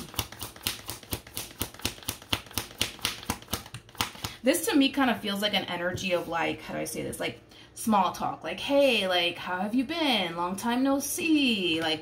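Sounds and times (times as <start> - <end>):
cards being shuffled: 0.0 - 4.4.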